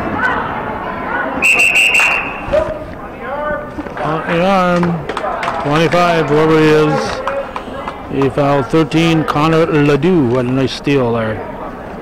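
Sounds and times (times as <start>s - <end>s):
voices: 0.0s - 12.0s
referee's whistle: 1.4s - 2.6s.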